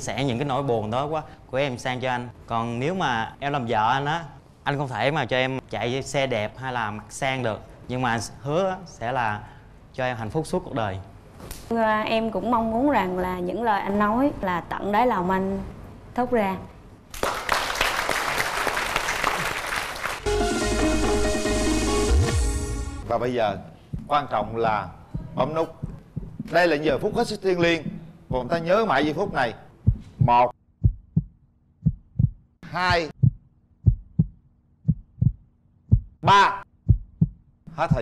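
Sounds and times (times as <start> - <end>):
audience applauding: 17.1 - 20.7
upbeat electronic music jingle: 20.2 - 23.1
heartbeat thumps: 23.9 - 38.0.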